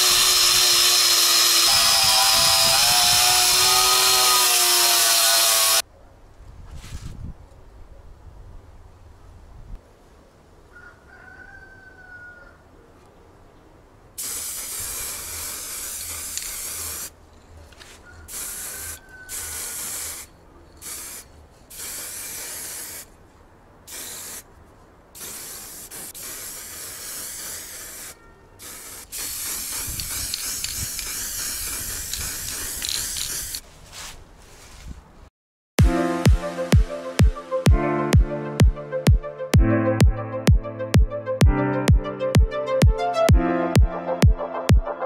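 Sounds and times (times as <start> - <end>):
spray-paint can hissing: 14.2 - 17.1, 18.3 - 23.1, 23.9 - 24.5, 25.2 - 33.6.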